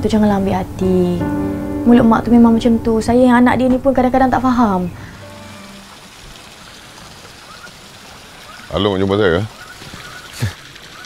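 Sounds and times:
running water: 1.8 - 11.0.

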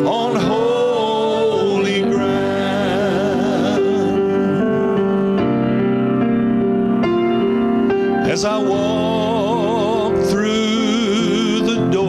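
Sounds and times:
choir singing gospel chorus: 0.0 - 5.2
sustained keyboard chords: 0.0 - 12.0.

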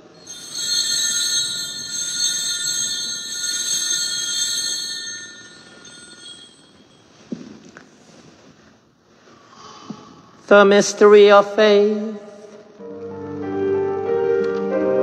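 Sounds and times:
altar bells ringing: 0.0 - 7.6.

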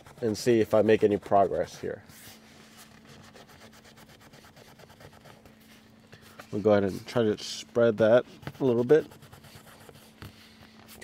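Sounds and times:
low steady hum: 0.0 - 11.0
towel scrubbing a car seat: 8.5 - 9.8.

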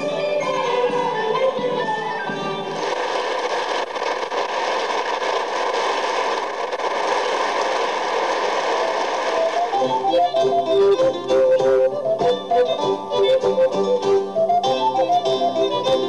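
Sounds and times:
music: 0.0 - 3.5, 8.8 - 16.0
audience applauding: 2.7 - 11.8
plucked-string music: 9.7 - 16.0.

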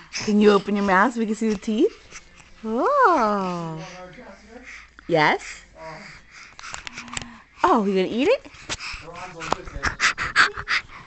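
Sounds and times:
breathy panting huffs: 0.0 - 11.0.

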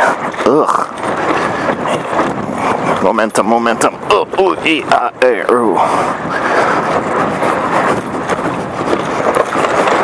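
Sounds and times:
rider grunting: 0.0 - 3.0.

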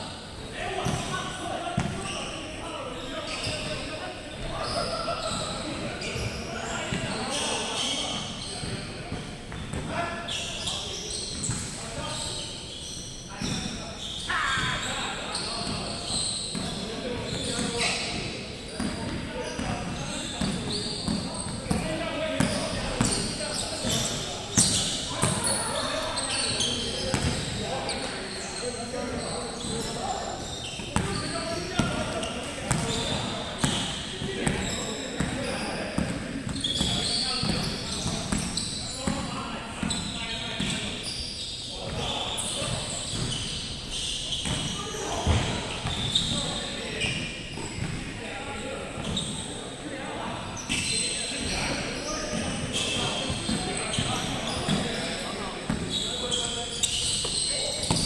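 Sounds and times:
shoes squeaking on court: 0.4 - 48.0, 48.9 - 49.5, 50.6 - 58.0.

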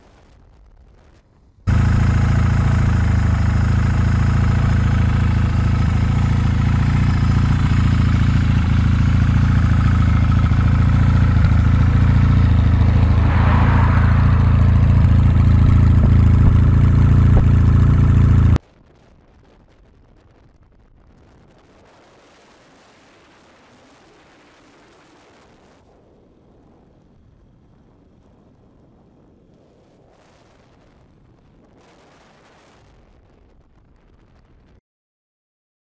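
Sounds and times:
motorcycle engine idling: 1.7 - 13.3, 14.9 - 18.6
short rushing swell: 10.5 - 18.5.

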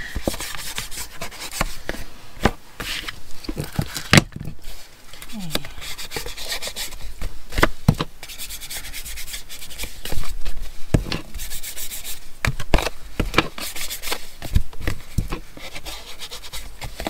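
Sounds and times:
foam tool scratchy rubbing on paper: 0.2 - 1.8, 5.8 - 7.1, 8.2 - 10.4, 11.3 - 12.3, 13.5 - 14.3, 15.5 - 17.0.

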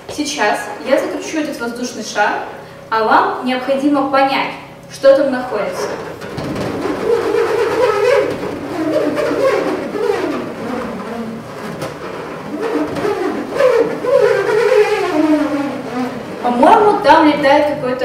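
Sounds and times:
nut spinning inside balloon: 5.8 - 17.0.

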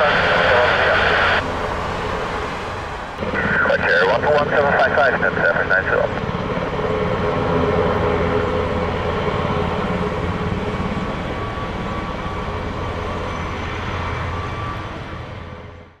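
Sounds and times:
helicopter engine whine: 0.0 - 16.0
helicopter rotor beating: 0.0 - 16.0.

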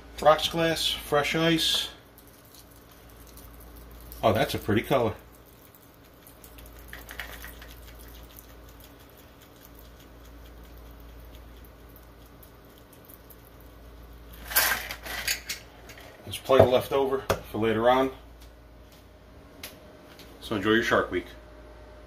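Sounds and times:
metal shaker and ice clattering: 2.1 - 9.0, 14.3 - 16.1.

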